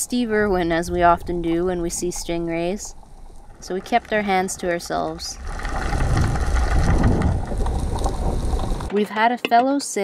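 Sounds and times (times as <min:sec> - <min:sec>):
faint hum: 0:00.0 - 0:05.4
low rumble: 0:00.0 - 0:08.9
muffled underwater water rush: 0:00.0 - 0:08.9.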